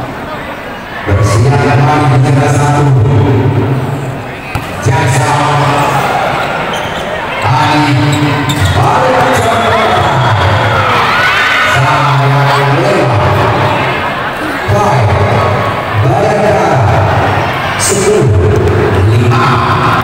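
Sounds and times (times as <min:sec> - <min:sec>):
crowd voices and cheering: 0:00.0 - 0:20.0
volleyball hit thumps: 0:04.5 - 0:04.8.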